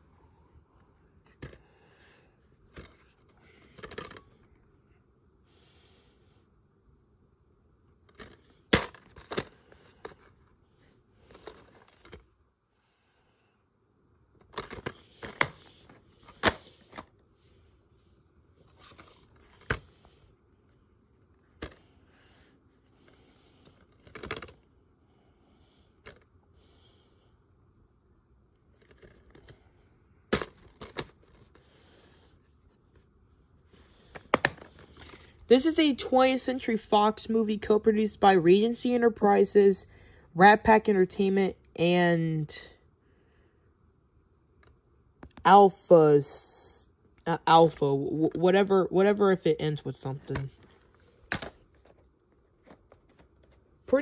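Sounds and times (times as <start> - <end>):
plastic cases clicking and scraping: 1.2 - 1.7, 2.6 - 4.5, 8.0 - 10.5, 11.2 - 12.3, 14.4 - 17.2, 18.6 - 20.1, 21.5 - 22.0, 22.8 - 24.7, 28.7 - 29.6, 30.3 - 31.8, 33.7 - 35.4, 50.2 - 53.7.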